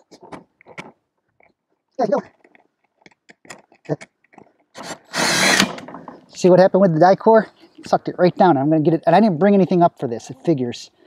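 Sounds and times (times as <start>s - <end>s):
cordless drill running: 4.8s - 5.8s.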